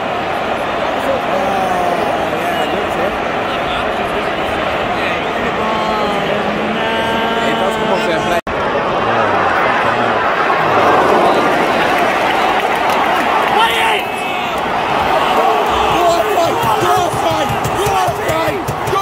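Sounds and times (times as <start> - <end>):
separate crowd shouts: 0.0 - 19.0
stadium crowd singing and shouting: 0.0 - 19.0.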